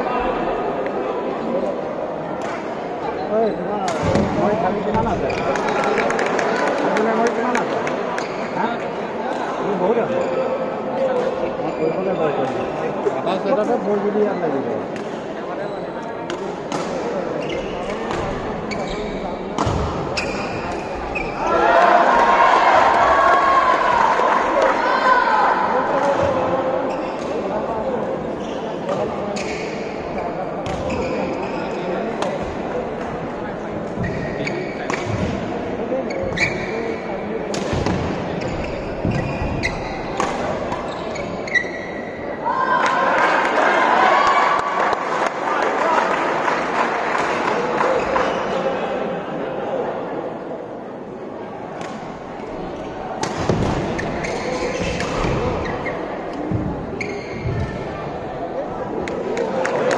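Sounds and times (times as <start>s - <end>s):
murmur of spectators: 0.0s - 59.9s
crowd shouting: 21.4s - 25.8s, 42.3s - 46.3s.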